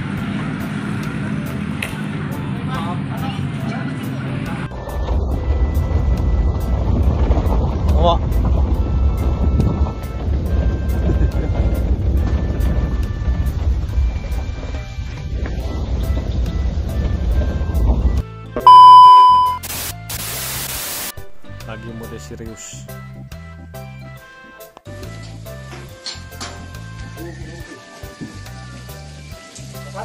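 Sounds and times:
vehicle driving on dirt road: 0.0 - 18.2
loud steady beep: 18.7 - 19.6
burst of loud hiss: 19.6 - 21.1.

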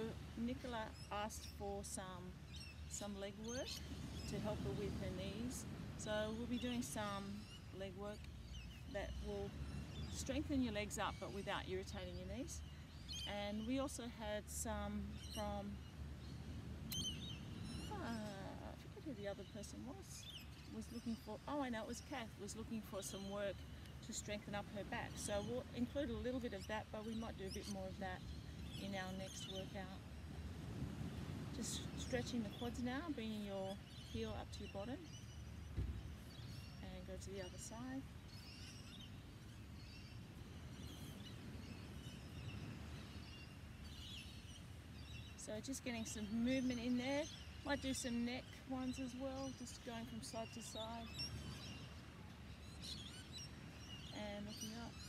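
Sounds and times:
low outdoor rumble: 0.0 - 40.9.

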